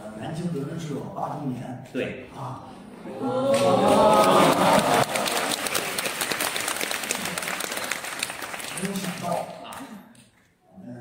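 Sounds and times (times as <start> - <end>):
audience applauding: 3.4 - 9.9.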